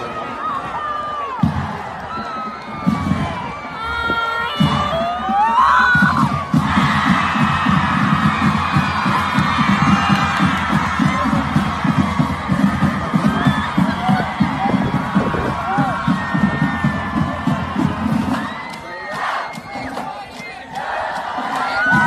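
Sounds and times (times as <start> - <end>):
stadium crowd noise: 0.0 - 22.0
music with low beat: 6.0 - 22.0.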